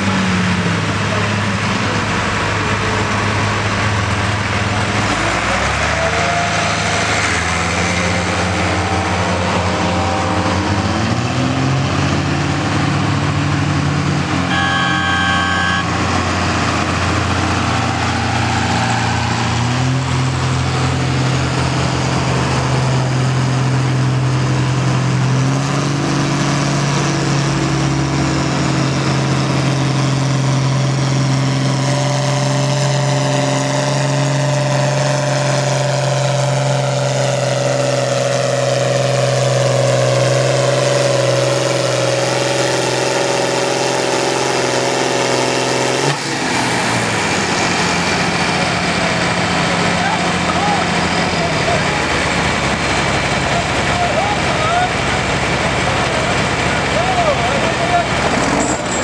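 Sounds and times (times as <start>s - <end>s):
tractor engine running under load: 6.6s - 59.0s.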